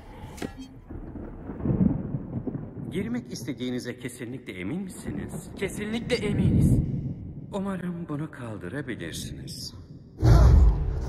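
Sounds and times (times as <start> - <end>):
low booming rumble: 0.9 - 3.6.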